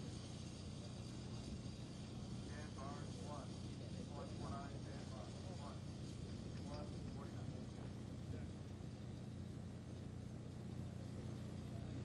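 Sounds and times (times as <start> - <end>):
distant voices talking: 0.0 - 9.3
steady low hum: 0.0 - 12.0.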